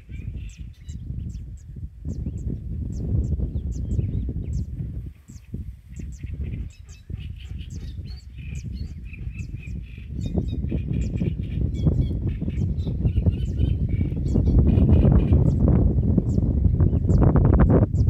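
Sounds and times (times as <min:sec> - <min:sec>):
small birds chirping: 0:00.0 - 0:18.0
wind rumble on microphone: 0:00.0 - 0:18.0.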